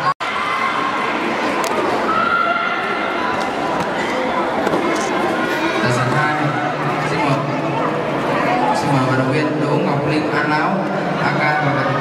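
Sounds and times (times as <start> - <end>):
crowd shouting and cheering: 0.0 - 12.0
long drawn-out shout: 2.0 - 3.3.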